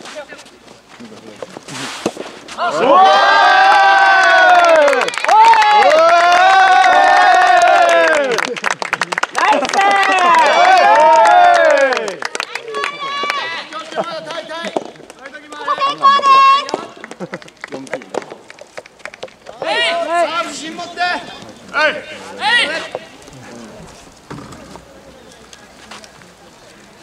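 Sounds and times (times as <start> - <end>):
group cheering and chanting: 2.6 - 8.4, 9.4 - 14.6, 15.4 - 17.0
hand clapping: 4.6 - 19.6.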